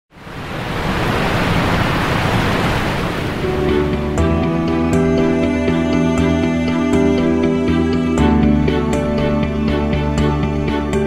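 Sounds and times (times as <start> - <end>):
waterfall rushing: 0.2 - 4.2
soft music with held notes: 3.4 - 11.0.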